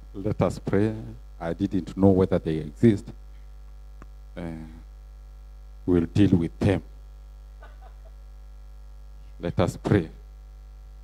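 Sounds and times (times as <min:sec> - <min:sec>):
electrical mains hum: 0:00.0 - 0:11.0
man saying uh: 0:00.2 - 0:03.1, 0:04.4 - 0:04.8.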